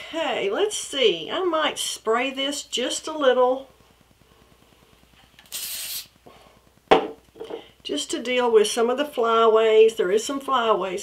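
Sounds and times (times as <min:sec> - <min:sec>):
hairspray hiss: 0:05.4 - 0:06.2
sharp knock: 0:06.9 - 0:07.2.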